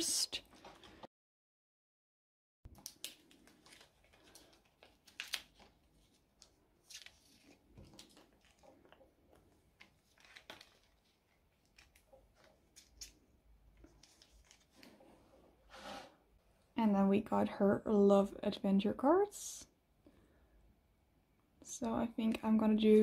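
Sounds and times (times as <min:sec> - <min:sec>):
plastic pages rustling and crinkling: 0:02.7 - 0:15.3.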